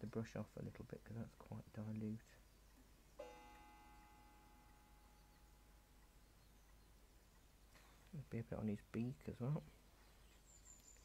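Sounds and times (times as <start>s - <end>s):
faint ringing tone: 3.2s - 6.6s.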